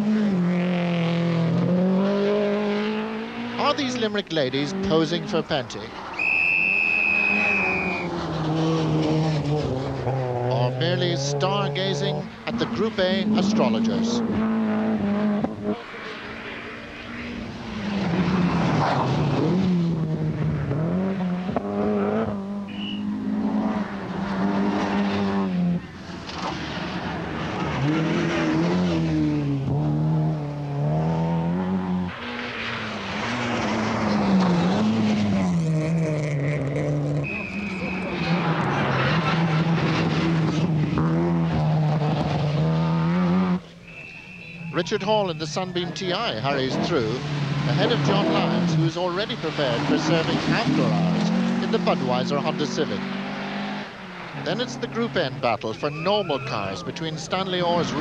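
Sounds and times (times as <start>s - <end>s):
rally car engines revving: 0.0s - 58.0s
high-pitched squeals: 6.1s - 8.2s, 43.8s - 45.9s.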